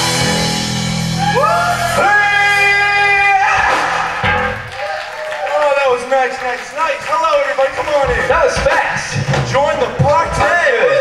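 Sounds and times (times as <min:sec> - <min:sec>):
man talking into microphone: 0:05.4 - 0:11.0.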